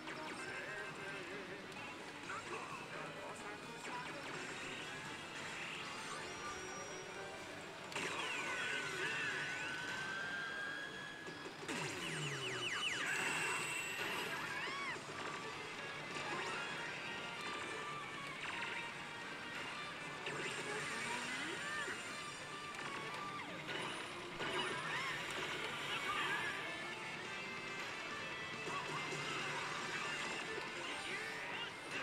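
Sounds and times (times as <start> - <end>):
din of surrounding machines: 0.0 - 32.0
slot machine music and chimes: 0.0 - 32.0.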